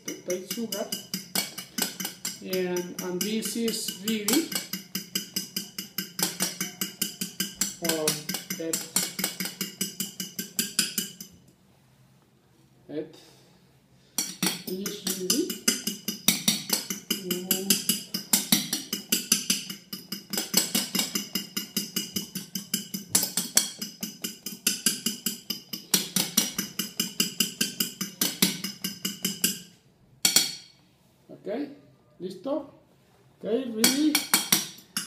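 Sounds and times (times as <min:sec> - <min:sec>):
fork beating eggs in bowl: 0:00.0 - 0:11.4, 0:14.2 - 0:30.6, 0:33.8 - 0:35.0.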